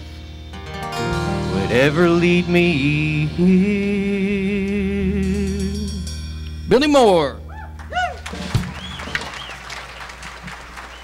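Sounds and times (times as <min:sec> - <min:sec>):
high whistle or whoop: 0:07.5 - 0:09.6
crowd clapping: 0:07.7 - 0:11.0.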